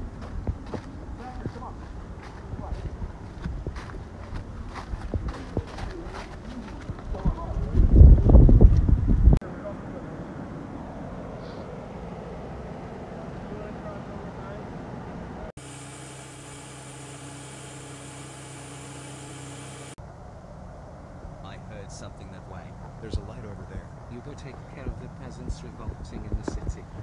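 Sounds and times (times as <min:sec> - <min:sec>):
steady hum and whine: 0:09.7 - 0:27.0
low tape hiss and rumble: 0:20.0 - 0:27.0.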